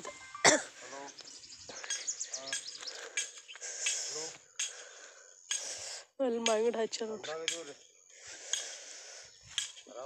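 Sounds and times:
person coughing: 0.4s - 0.8s.

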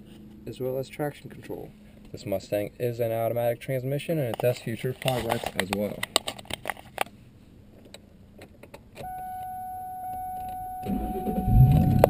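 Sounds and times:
car engine starting and idling: 9.0s - 12.0s
steady high tone: 9.0s - 12.0s.

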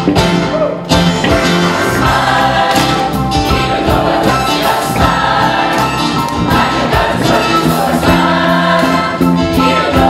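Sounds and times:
live band playing: 0.0s - 10.0s
gospel choir singing: 1.6s - 10.0s.

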